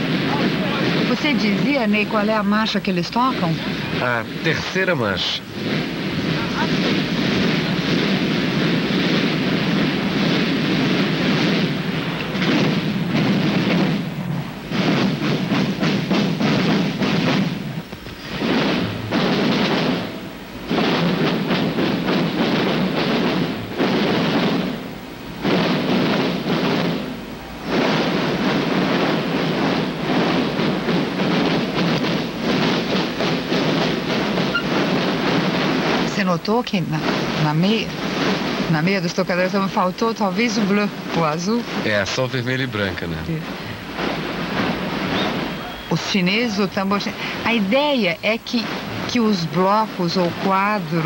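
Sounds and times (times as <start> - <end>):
marching field drums: 0.0 - 51.0.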